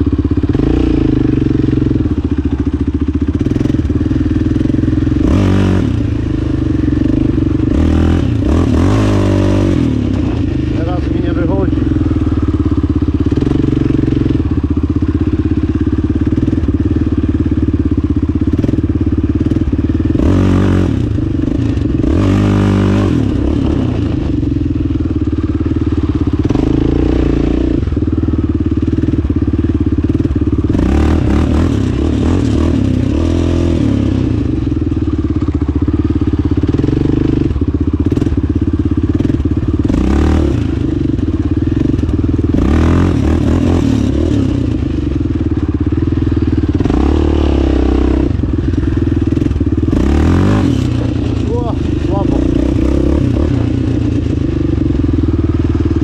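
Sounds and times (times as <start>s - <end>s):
quad bike engine revving: 0.0s - 56.0s.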